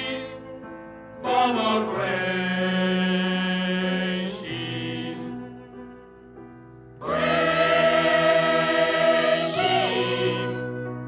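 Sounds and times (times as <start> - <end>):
choir singing: 0.0 - 0.6, 1.2 - 6.0, 7.0 - 11.0.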